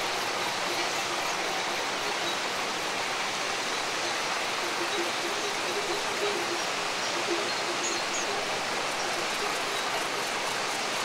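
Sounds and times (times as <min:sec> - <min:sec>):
river water flowing: 0:00.0 - 0:11.0.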